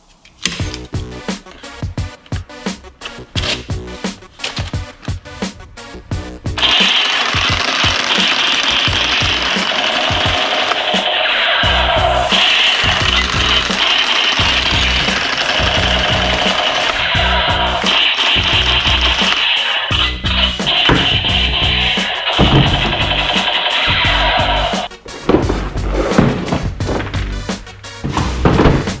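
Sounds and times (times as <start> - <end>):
background music with steady beat: 0.4 - 29.0
toy gun rapid gunfire effect: 6.6 - 24.9.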